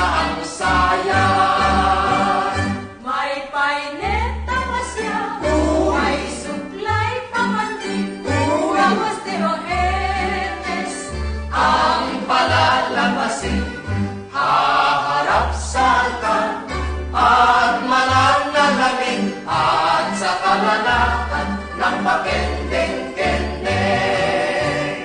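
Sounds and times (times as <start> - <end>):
group singing in unison: 0.0 - 6.8, 8.2 - 25.0.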